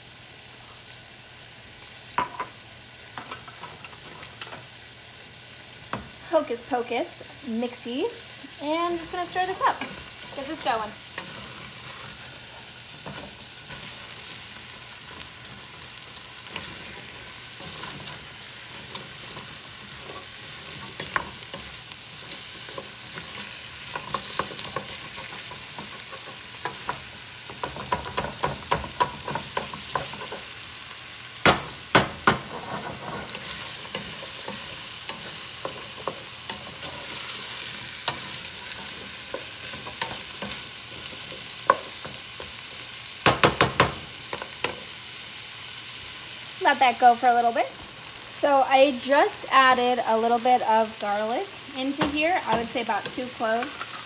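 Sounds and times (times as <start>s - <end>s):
vegetables sizzling in oil: 0.0s - 54.0s.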